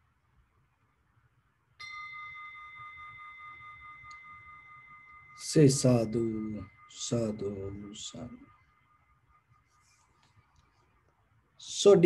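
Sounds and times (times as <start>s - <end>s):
meditation bell ringing: 1.8s - 10.0s.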